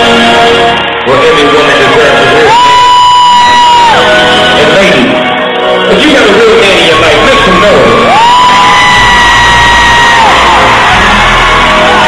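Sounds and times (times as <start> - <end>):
crowd yelling: 0.0 - 4.6, 6.8 - 12.0.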